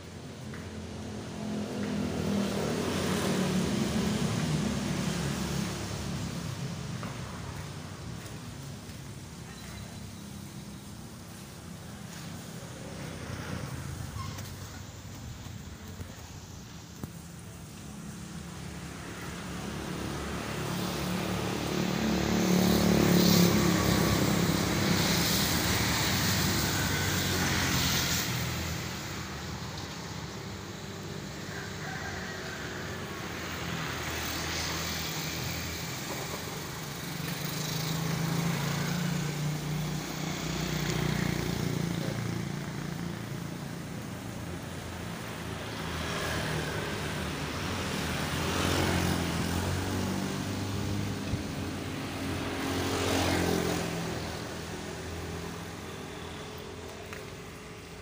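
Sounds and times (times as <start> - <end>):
passing traffic rumble: 0.0 - 58.0.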